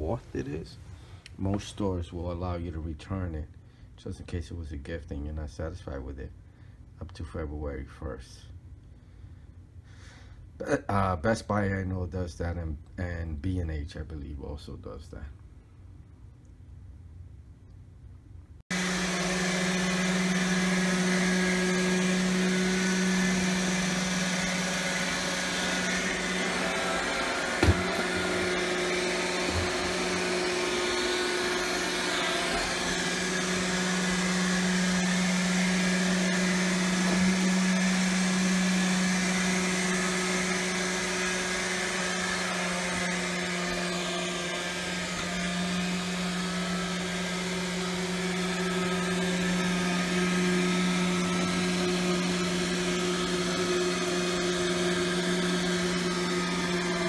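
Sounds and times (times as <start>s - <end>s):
robot vacuum motor hum: 18.7s - 57.0s.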